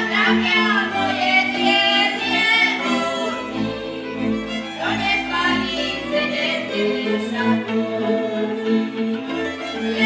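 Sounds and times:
women singing folk song: 0.0s - 3.8s, 4.6s - 10.0s
folk string band with fiddle: 0.0s - 10.0s.

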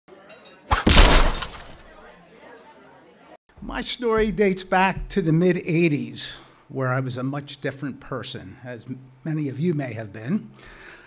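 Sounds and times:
loud crash: 0.7s - 1.8s.

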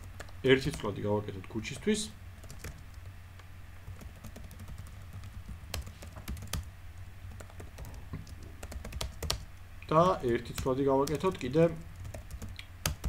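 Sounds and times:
low steady hum: 0.0s - 13.0s
keyboard typing clicks: 7.3s - 13.0s.

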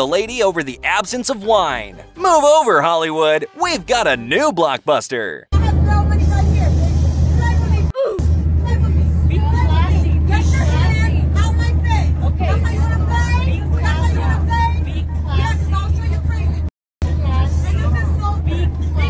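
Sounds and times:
airliner cabin drone: 5.6s - 19.0s
passengers arguing: 8.6s - 19.0s.

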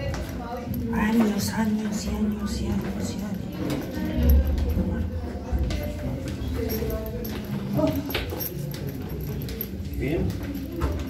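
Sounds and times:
footsteps going down stairs: 0.0s - 11.0s
people's voices: 0.0s - 11.0s.

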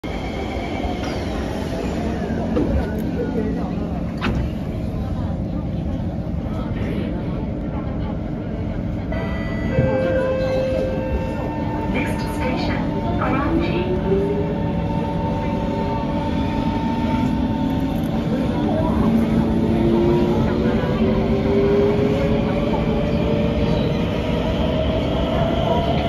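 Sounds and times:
train and station noise: 0.0s - 26.0s.

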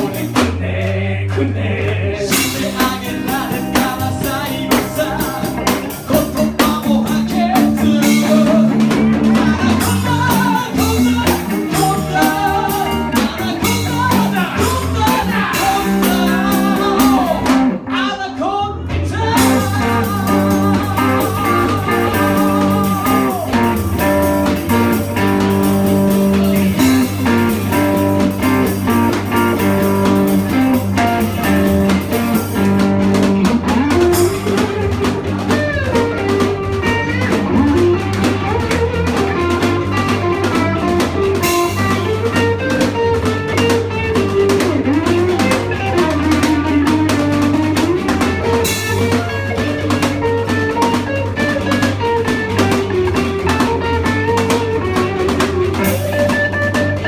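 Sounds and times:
live rock band playing: 0.0s - 0.8s, 2.2s - 57.0s
sliding lead guitar line: 2.2s - 18.3s, 19.2s - 57.0s.

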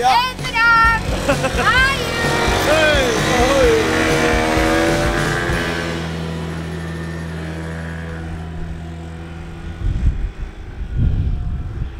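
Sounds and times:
moped engine: 0.0s - 11.9s
wind buffeting microphone: 8.0s - 11.9s.

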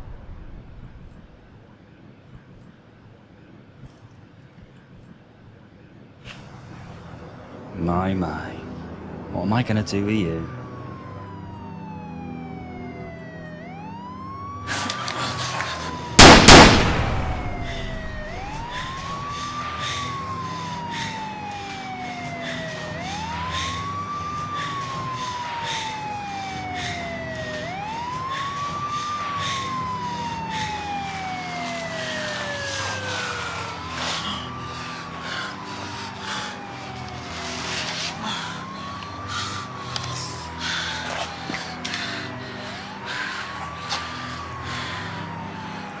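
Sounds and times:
siren wailing: 8.3s - 46.0s
loud gunshot: 16.2s - 18.9s.

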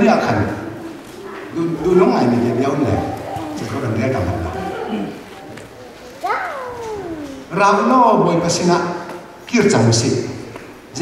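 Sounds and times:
high-pitched cry: 5.8s - 7.6s.

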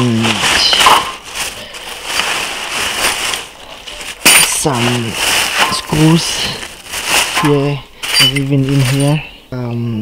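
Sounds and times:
plastic bag crinkling: 0.0s - 9.3s.

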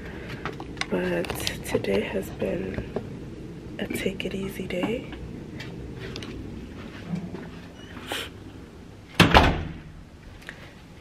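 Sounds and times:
door slamming shut: 9.2s - 10.0s.

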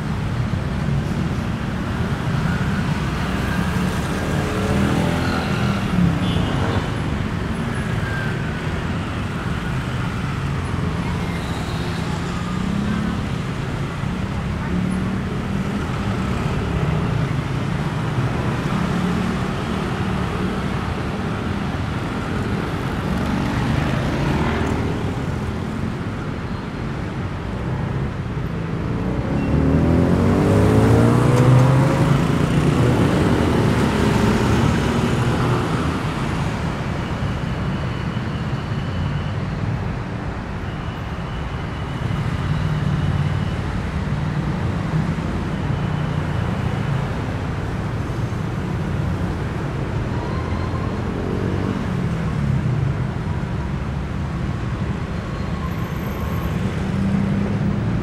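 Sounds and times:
heavy road traffic passing: 0.0s - 58.0s.

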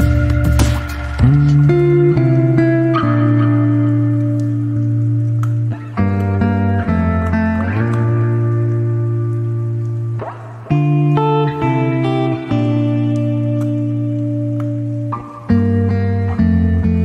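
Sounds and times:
guitar chords: 0.0s - 17.0s.

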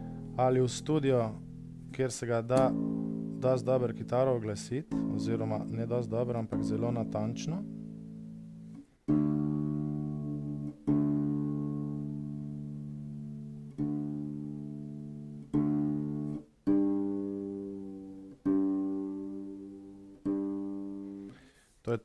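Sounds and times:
plucked bass guitar notes: 0.0s - 22.0s.

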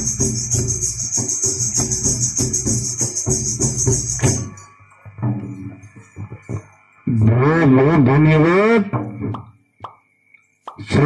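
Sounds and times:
man announcing: 7.1s - 8.9s.

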